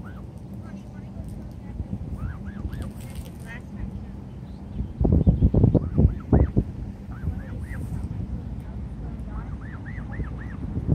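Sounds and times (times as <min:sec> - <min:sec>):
low rumbling on microphone: 0:00.0 - 0:10.9
geese honking: 0:02.1 - 0:03.2, 0:05.8 - 0:08.0, 0:09.3 - 0:10.7.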